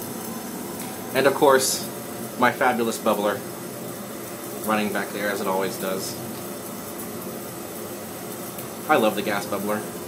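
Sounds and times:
gas bubbler bubbling: 0.0s - 10.0s
ventilation air rushing: 0.0s - 10.0s.

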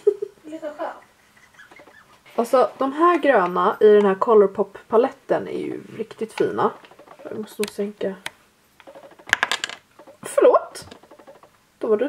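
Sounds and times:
small plastic clicks: 6.1s - 11.6s.

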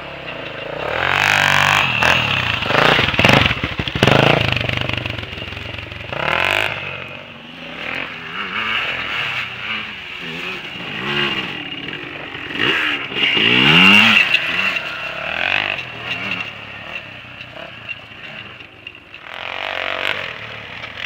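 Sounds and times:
distant dirt bikes and quads revving: 0.0s - 21.0s
motorcycle passing at high revs: 0.0s - 21.0s.

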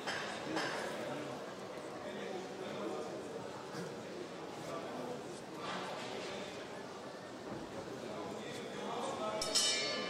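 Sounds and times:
crowd voices: 0.0s - 10.0s
boxing ring bell clang: 9.4s - 10.0s.

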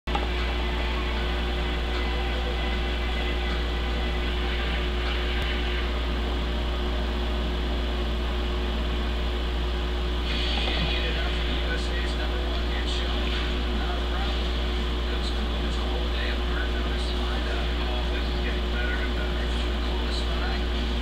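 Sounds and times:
constant background noise: 0.1s - 21.0s
steady low hum: 0.1s - 21.0s.

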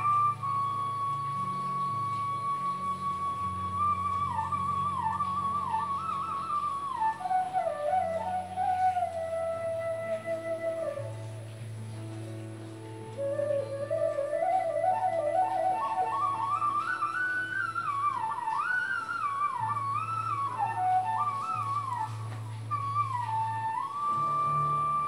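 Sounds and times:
flute melody: 0.0s - 25.0s.

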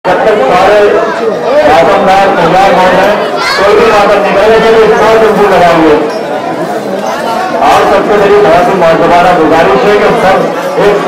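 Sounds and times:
people talking at once: 0.1s - 11.0s.

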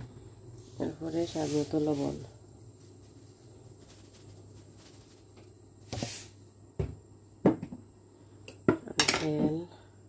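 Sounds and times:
rustling hiss: 0.6s - 6.4s
kitchen items knocking on hard surface: 6.8s - 7.8s.

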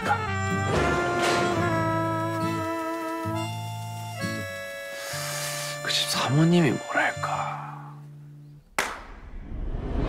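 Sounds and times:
sharp hand clap: 8.8s - 9.2s.

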